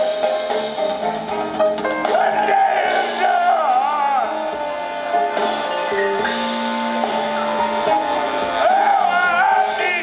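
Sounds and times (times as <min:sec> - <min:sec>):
blues band playing: 0:00.0 - 0:10.0.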